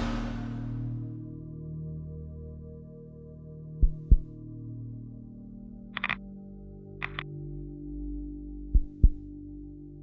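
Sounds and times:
low ambient drone: 0.0s - 10.0s.

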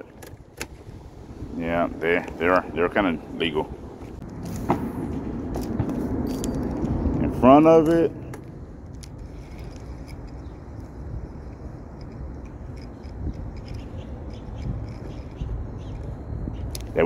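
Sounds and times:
steady low rumble: 0.0s - 17.0s
fishing reel ticking: 11.5s - 16.0s.

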